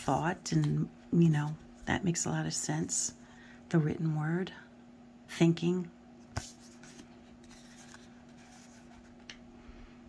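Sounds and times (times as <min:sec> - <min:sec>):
cards sliding: 0:06.3 - 0:09.4.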